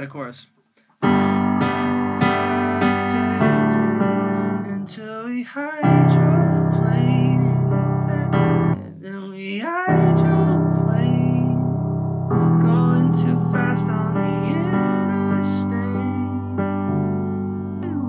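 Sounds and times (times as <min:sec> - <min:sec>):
piano chords: 0:01.0 - 0:05.2, 0:05.8 - 0:09.0, 0:09.8 - 0:18.0
man singing wordless melody: 0:01.0 - 0:18.0.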